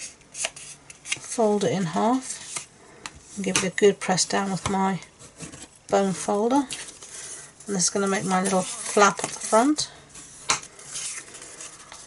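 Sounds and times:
paper rubbing and rustling: 0:06.8 - 0:12.0.

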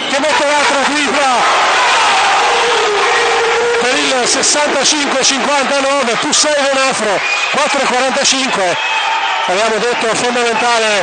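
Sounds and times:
man commentating: 0:00.0 - 0:01.5, 0:02.8 - 0:08.8, 0:09.4 - 0:11.0.

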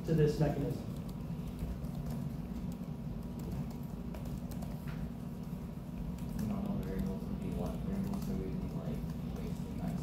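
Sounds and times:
steady low hum: 0:00.0 - 0:10.0
faint taps and clicks: 0:00.9 - 0:09.5.

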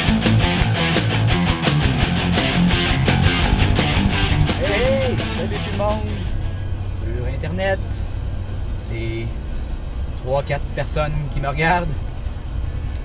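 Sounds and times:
rock guitar music: 0:00.0 - 0:06.9
vehicle cabin hum: 0:00.2 - 0:13.0.

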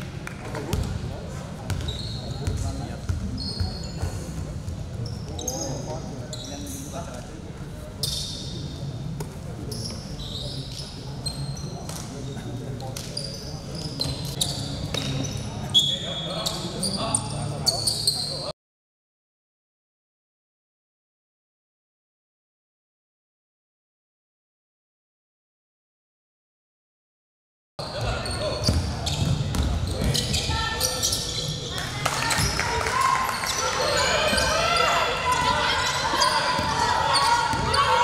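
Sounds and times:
sneakers squeaking: 0:00.6 - 0:01.0, 0:01.6 - 0:06.9, 0:08.0 - 0:18.5, 0:27.8 - 0:38.0
players' voices echoing: 0:27.8 - 0:38.0.

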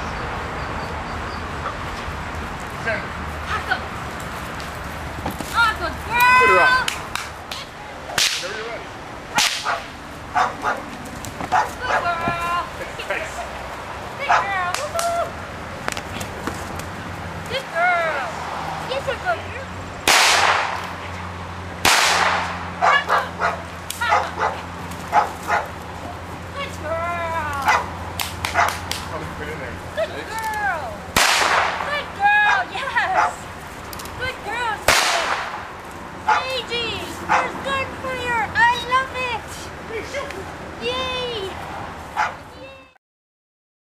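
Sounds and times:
stick or whip crack: 0:06.7 - 0:08.6, 0:09.3 - 0:09.9, 0:20.0 - 0:21.0, 0:21.8 - 0:22.6, 0:27.6 - 0:29.1, 0:31.2 - 0:32.0, 0:34.8 - 0:35.7
dog barking in rapid bursts: 0:09.6 - 0:12.1, 0:14.2 - 0:14.6, 0:22.8 - 0:25.8, 0:27.6 - 0:28.9, 0:32.4 - 0:33.5, 0:36.2 - 0:37.7, 0:42.1 - 0:42.4.

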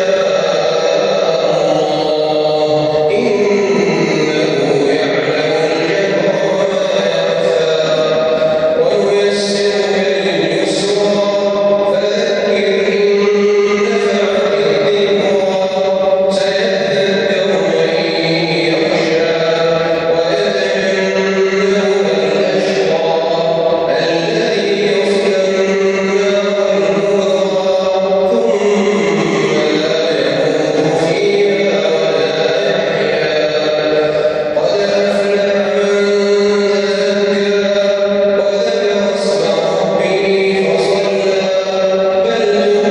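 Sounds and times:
person chanting over loudspeakers: 0:00.0 - 0:42.9.

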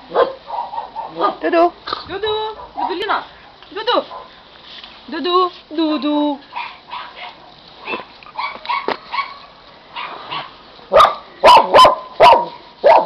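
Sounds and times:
dog barking loudly: 0:00.1 - 0:01.5, 0:02.6 - 0:03.2, 0:04.0 - 0:04.4, 0:06.5 - 0:13.0
dogs yipping faintly: 0:06.5 - 0:13.0.

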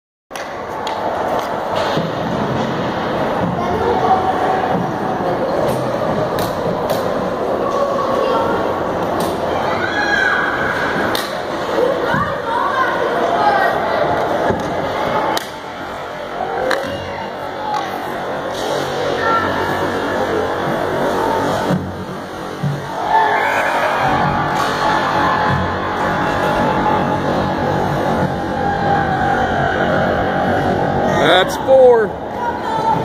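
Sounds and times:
crowd shouting and cheering: 0:00.4 - 0:33.0.

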